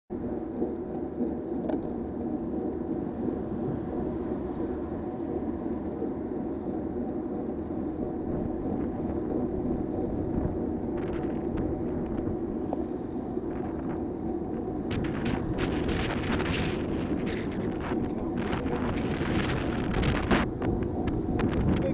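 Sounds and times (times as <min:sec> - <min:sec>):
car engine and road noise: 0:00.1 - 0:21.9.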